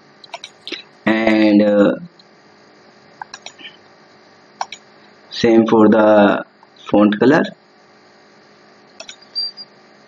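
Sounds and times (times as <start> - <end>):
mains hum: 0.0 - 10.0
computer mouse click: 0.2 - 0.6, 3.2 - 3.6, 4.6 - 4.8, 9.0 - 9.3.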